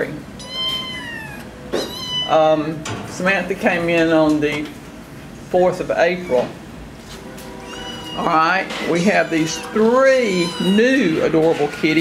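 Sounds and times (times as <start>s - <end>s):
cat meowing: 0.4s - 2.4s, 7.6s - 8.4s, 10.2s - 11.0s.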